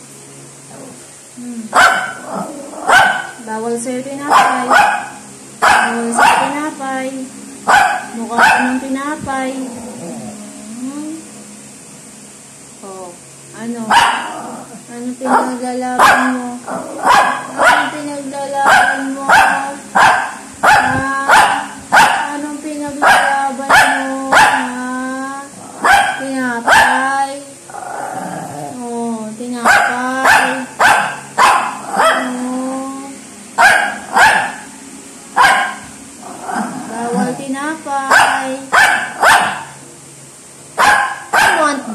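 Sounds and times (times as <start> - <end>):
small dog barking: 1.7 - 3.4, 4.3 - 6.7, 7.6 - 8.9, 13.9 - 14.6, 15.2 - 22.4, 23.0 - 24.8, 25.8 - 27.1, 29.6 - 32.4, 33.6 - 34.7, 35.4 - 35.9, 38.1 - 39.8, 40.8 - 41.9.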